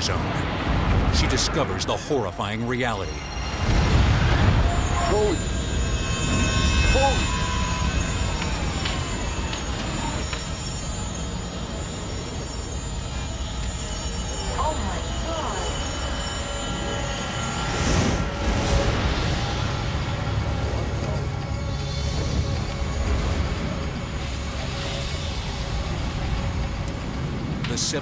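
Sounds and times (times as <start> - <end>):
deep explosion rumble: 0.0 - 2.2, 3.1 - 10.3
dark tense music: 0.0 - 28.0
explosion blast: 3.4 - 9.4.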